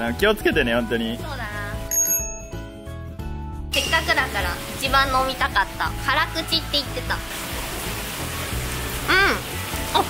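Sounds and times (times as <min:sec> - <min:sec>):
soft background music: 0:00.0 - 0:10.0
rain falling: 0:03.8 - 0:10.0.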